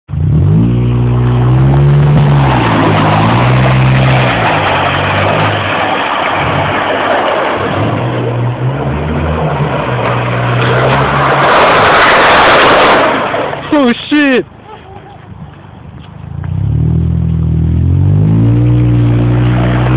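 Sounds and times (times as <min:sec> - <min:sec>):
car engine revving: 0:00.1 - 0:13.8, 0:16.3 - 0:19.9
loud steady rushing noise: 0:01.8 - 0:14.4.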